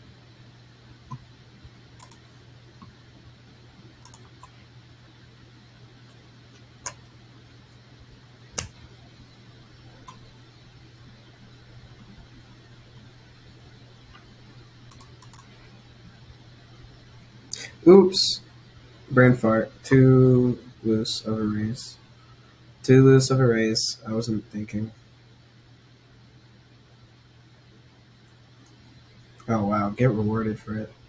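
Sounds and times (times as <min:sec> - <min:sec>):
computer mouse clicks: 0:01.1 - 0:01.3, 0:02.0 - 0:03.0, 0:04.0 - 0:04.6, 0:06.1 - 0:07.0, 0:08.6 - 0:08.9, 0:10.0 - 0:10.3, 0:14.9 - 0:15.6.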